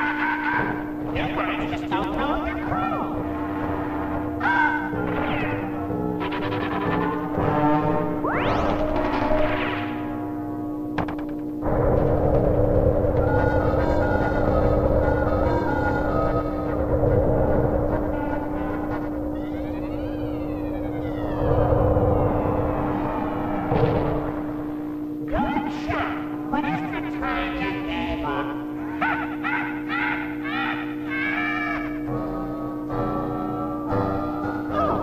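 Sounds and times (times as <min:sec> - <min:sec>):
cartoon rocket roar: 0:11.6 - 0:24.9
wavering whistle gliding: 0:13.1 - 0:24.7.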